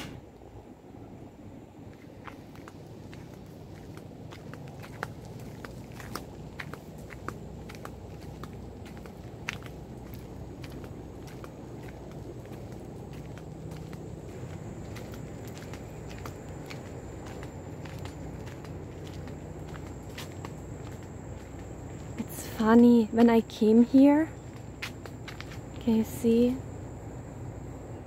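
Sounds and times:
faint high-pitched whine: 0:00.0 - 0:28.0
low steady rumble: 0:00.0 - 0:28.0
footsteps on dirt trail: 0:01.8 - 0:26.6.

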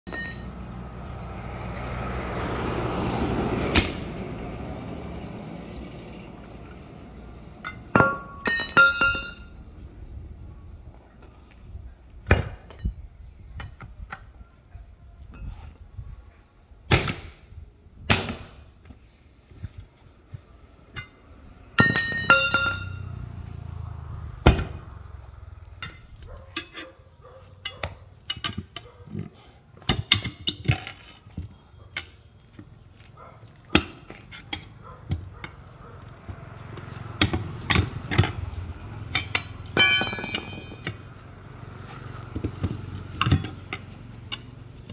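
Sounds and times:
sledgehammer striking tyre rim: 0:03.7 - 0:04.2, 0:07.6 - 0:09.6, 0:16.9 - 0:17.4, 0:18.0 - 0:18.7, 0:21.7 - 0:23.1, 0:24.2 - 0:25.0, 0:33.7 - 0:35.4, 0:37.2 - 0:41.2, 0:41.8 - 0:44.9
tyre levers clanking on rim: 0:07.6 - 0:09.6, 0:20.9 - 0:23.4, 0:24.4 - 0:44.9.

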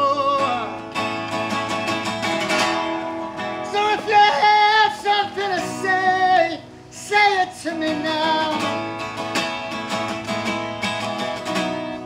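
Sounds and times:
person singing: 0:00.0 - 0:01.0, 0:03.5 - 0:08.8
acoustic guitar strumming: 0:00.0 - 0:12.0.

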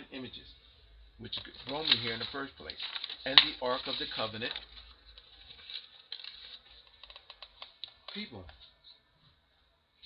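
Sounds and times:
paper and pen clicking: 0:01.6 - 0:08.6.

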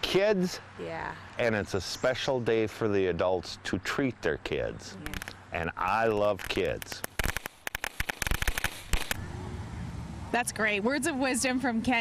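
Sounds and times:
low background noise: 0:00.0 - 0:07.6
firework crackling with sharp pops: 0:05.0 - 0:09.2.

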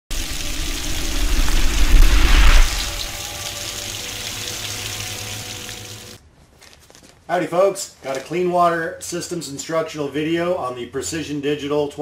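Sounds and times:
rush of water-like noise: 0:00.1 - 0:06.2.

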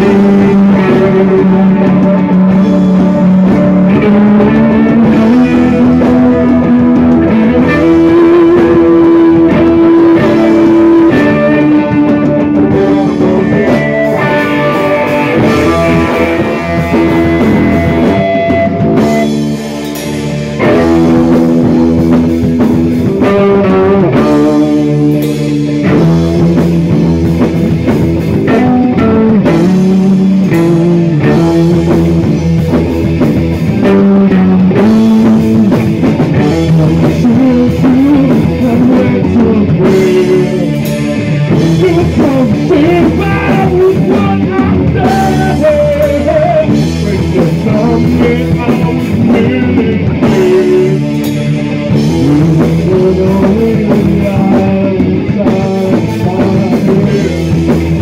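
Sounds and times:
rock band playing live: 0:00.0 - 0:58.0.

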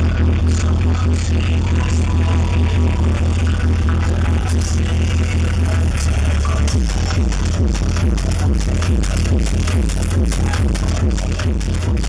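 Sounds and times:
heavy pulsing bass beat: 0:00.0 - 0:12.0
loud trance music: 0:00.0 - 0:12.0.

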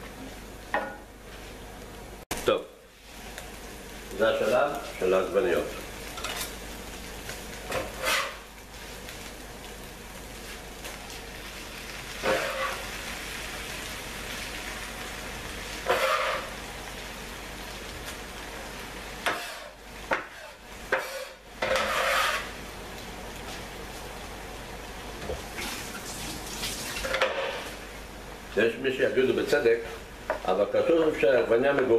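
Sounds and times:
food sizzling in a pan: 0:00.0 - 0:31.9
utensils scraping a pan: 0:07.7 - 0:08.4, 0:12.2 - 0:12.9, 0:15.8 - 0:16.6, 0:19.3 - 0:22.6.

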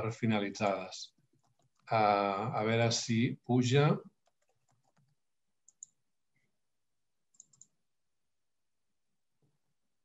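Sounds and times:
computer mouse clicks: 0:04.2 - 0:06.0, 0:07.3 - 0:07.8.

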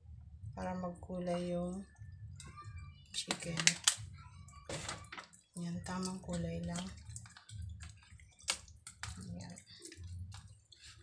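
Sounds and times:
hands squelching raw chicken: 0:06.0 - 0:11.0.

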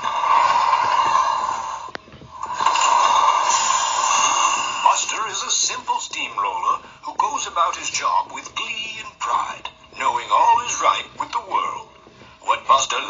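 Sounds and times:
steam hissing: 0:00.0 - 0:13.0
man narrating: 0:04.8 - 0:13.0.

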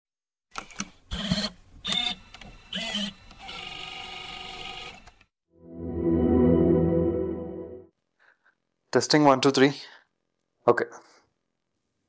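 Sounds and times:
musical swell: 0:05.6 - 0:07.9.

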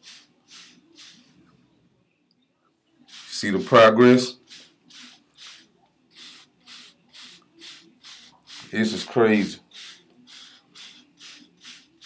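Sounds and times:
hair brush brushing hair: 0:00.0 - 0:01.4, 0:03.1 - 0:12.0.

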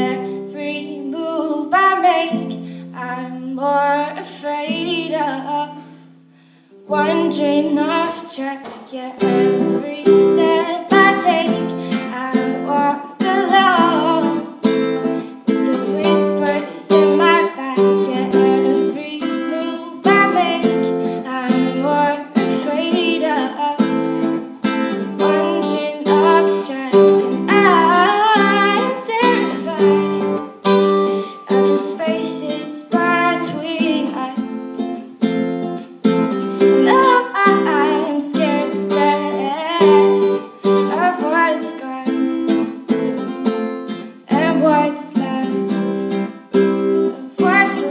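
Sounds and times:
woman singing: 0:00.0 - 0:06.0, 0:06.8 - 0:35.2, 0:36.1 - 0:47.9
strummed acoustic guitar: 0:00.0 - 0:47.9.

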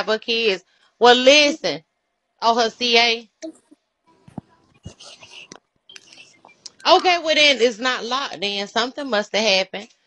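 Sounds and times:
person whispering: 0:04.3 - 0:08.3.

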